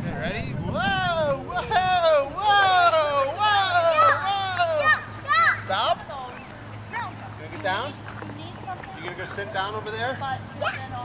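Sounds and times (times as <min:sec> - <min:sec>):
children's high-pitched voices: 0:00.8 - 0:05.9, 0:10.5 - 0:11.0.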